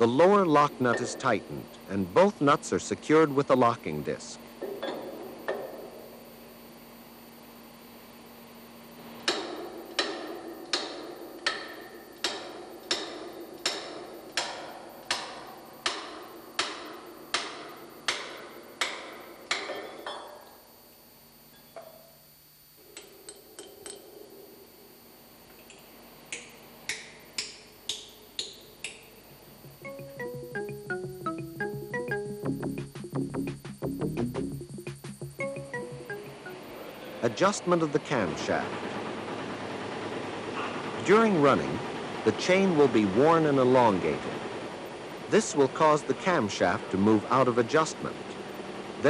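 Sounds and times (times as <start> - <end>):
electronic music: 28.4 - 38.7.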